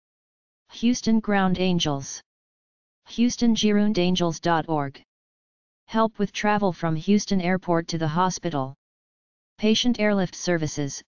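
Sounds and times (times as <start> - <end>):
person reading aloud: 0.8 - 2.2, 3.1 - 5.0, 5.9 - 8.8, 9.6 - 11.0.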